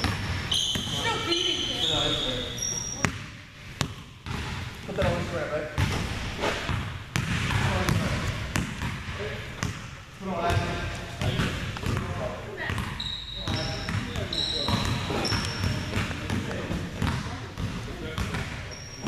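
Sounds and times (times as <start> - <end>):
basketball bouncing on hardwood floor: 0.0 - 1.1, 6.7 - 9.0, 10.5 - 12.1, 12.7 - 18.6
sneakers squeaking: 0.0 - 4.6, 10.5 - 19.0.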